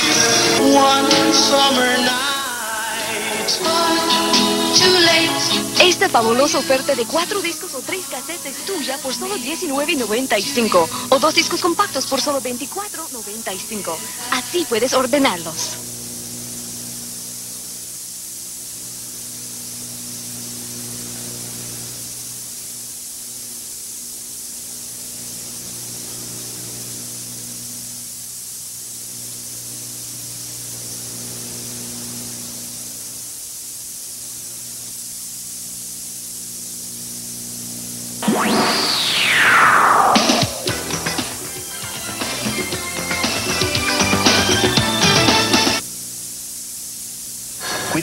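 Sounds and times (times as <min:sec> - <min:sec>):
low electrical hum: 0:00.0 - 0:41.1, 0:45.8 - 0:48.0
steady hiss: 0:00.0 - 0:48.0.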